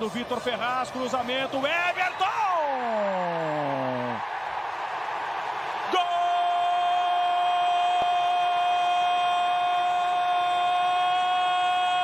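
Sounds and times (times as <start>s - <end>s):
man shouting goal commentary: 0.0s - 4.2s, 5.8s - 12.0s
stadium crowd noise: 0.0s - 12.0s.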